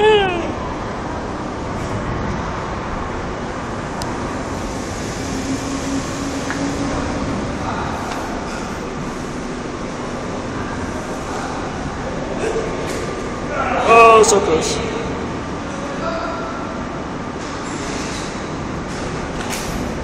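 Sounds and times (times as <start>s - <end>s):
background rumble and hiss: 0.0s - 16.1s
faint hum: 0.0s - 20.0s.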